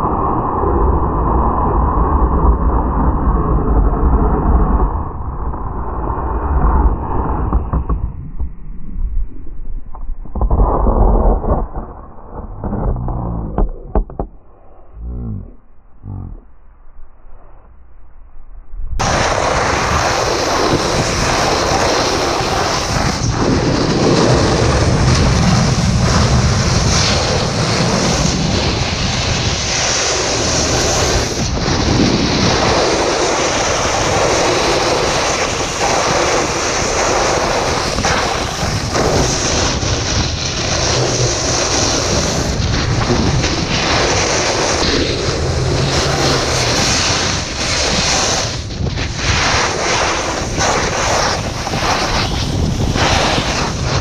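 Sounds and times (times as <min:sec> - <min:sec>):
wind rushing over microphone: 0:00.0 - 0:16.5, 0:18.7 - 0:54.0
snowboard scraping icy snow: 0:19.0 - 0:54.0.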